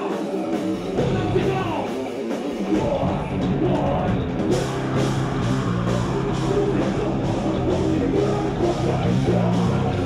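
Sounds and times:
drum kit: 0:00.0 - 0:10.0
electric guitar: 0:00.0 - 0:10.0.

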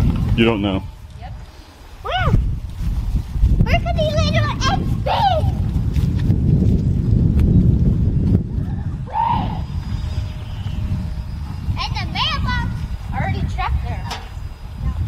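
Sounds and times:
low rumble on microphone: 0:00.0 - 0:15.0
children's high-pitched calls: 0:02.0 - 0:02.4, 0:03.6 - 0:05.8, 0:09.0 - 0:10.1, 0:11.6 - 0:15.0.

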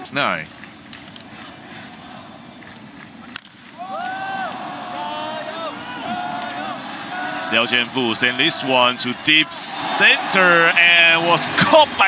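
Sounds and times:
stadium crowd murmur: 0:00.0 - 0:12.0
crowd cheering: 0:00.6 - 0:12.0.

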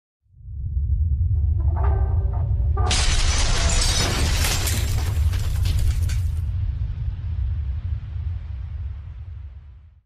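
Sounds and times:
deep steady rumble: 0:00.3 - 0:10.0
stone breaking and shattering: 0:02.9 - 0:06.4.

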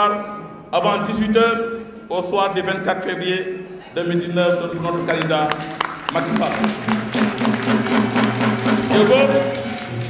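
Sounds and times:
rhythmic percussion music: 0:04.4 - 0:10.0.

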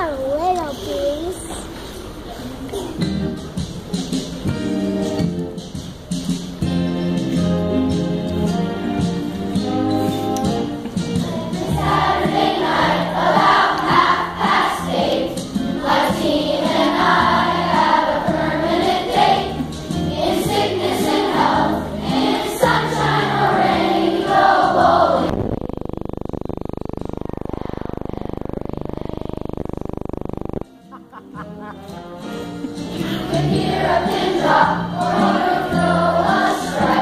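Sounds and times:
musical accompaniment: 0:02.8 - 0:25.5, 0:30.6 - 0:37.0
children's choir singing: 0:09.0 - 0:25.3, 0:32.7 - 0:37.0
steady even noise: 0:11.2 - 0:30.8.

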